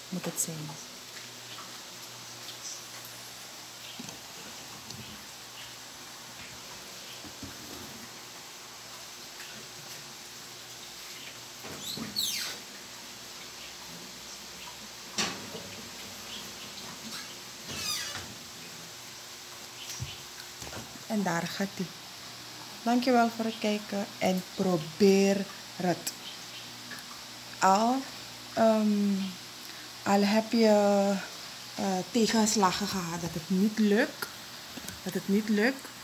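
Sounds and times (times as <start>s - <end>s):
steady low hiss: 0.0s - 36.0s.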